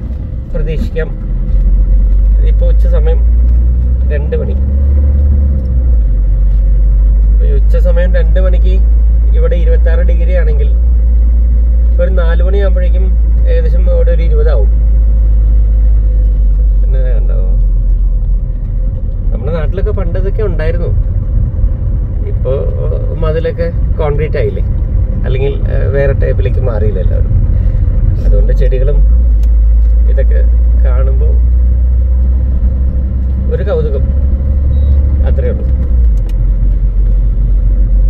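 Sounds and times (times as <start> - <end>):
car driving rumble from inside: 0.0 - 38.0
person talking: 22.2 - 27.3.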